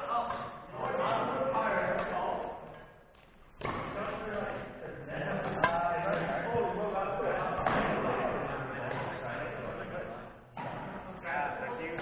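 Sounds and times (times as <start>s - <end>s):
indistinct talking in echoing gym: 0.0s - 12.0s.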